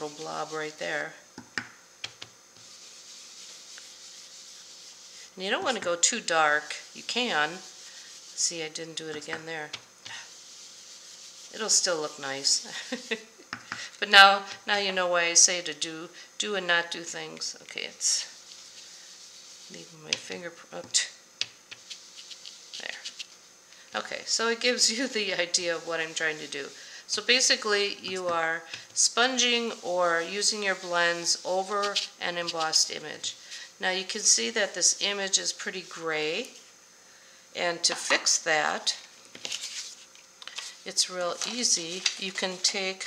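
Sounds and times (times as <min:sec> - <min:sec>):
brush rubbing on cardstock: 0:00.0 - 0:01.1, 0:02.6 - 0:13.3, 0:17.9 - 0:20.5, 0:21.7 - 0:23.5, 0:24.4 - 0:33.0, 0:39.4 - 0:43.0.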